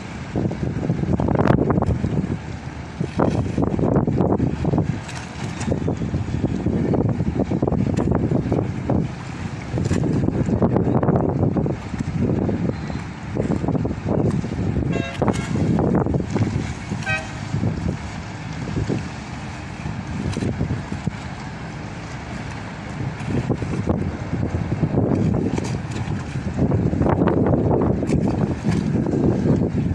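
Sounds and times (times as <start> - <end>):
boat engine rumble: 0.0 - 29.9
water: 0.0 - 29.9
wind gusting on microphone: 0.0 - 29.9
boat horn toots: 14.7 - 16.0, 16.6 - 18.4.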